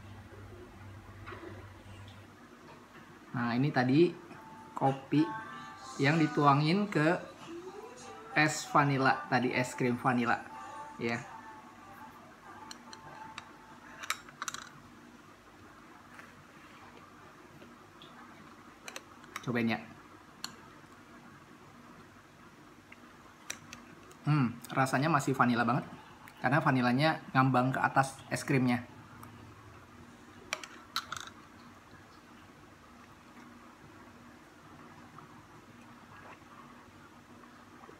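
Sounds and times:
faint steady hum: 0.0s - 37.9s.

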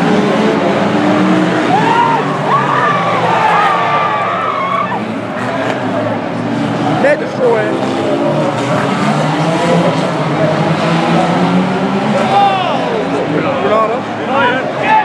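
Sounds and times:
car engines running hard: 0.0s - 15.0s
tyres squealing and skidding: 0.0s - 15.0s.

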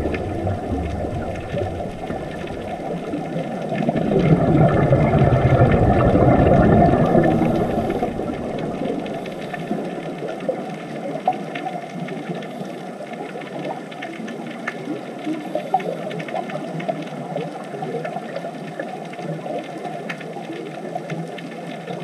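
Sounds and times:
deep rushing sound: 0.0s - 10.2s
underwater clicks and pops: 0.0s - 10.4s.

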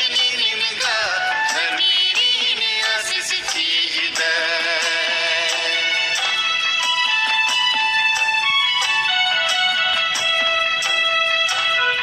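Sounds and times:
person singing with vibrato: 0.0s - 7.0s
instrumental accompaniment: 0.0s - 12.0s.

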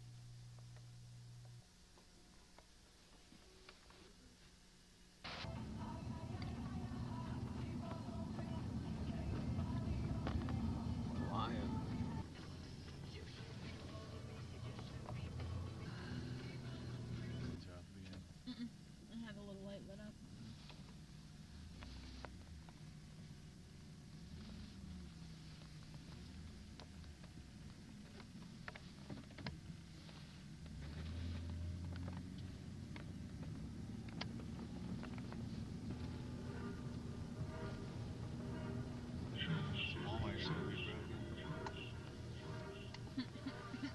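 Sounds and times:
indistinct voices: 5.4s - 17.6s, 35.9s - 43.9s.

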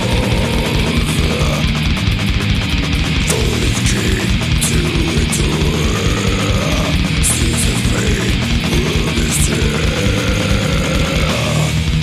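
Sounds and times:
distorted guitars and bass: 0.0s - 12.0s
rapid drumming: 0.0s - 12.0s.

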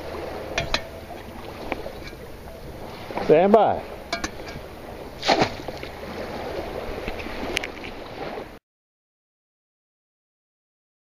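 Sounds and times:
water sloshing from wading: 0.0s - 8.6s
sudden splash: 4.9s - 8.4s.

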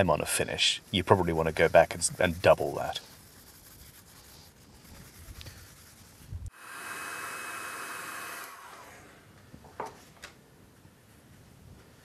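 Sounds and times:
tissue rubbing wax on wood: 0.0s - 6.4s
heat gun blowing: 6.5s - 9.2s.

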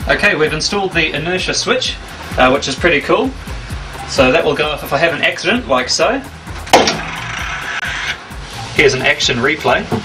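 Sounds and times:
steady hiss: 6.3s - 10.0s.

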